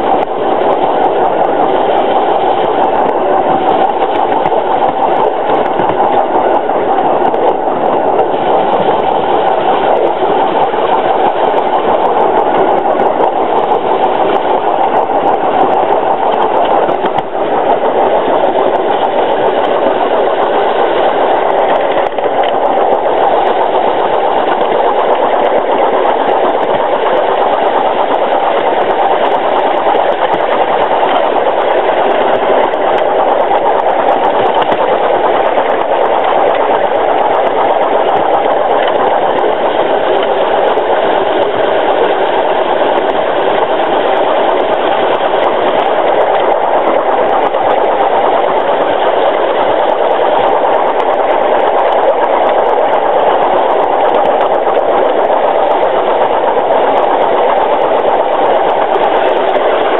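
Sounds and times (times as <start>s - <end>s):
running-gear clatter: 0.0s - 59.9s.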